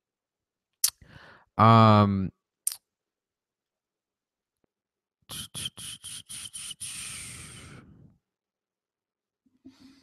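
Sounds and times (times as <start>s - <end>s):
long exhale: 6.6s - 8.1s.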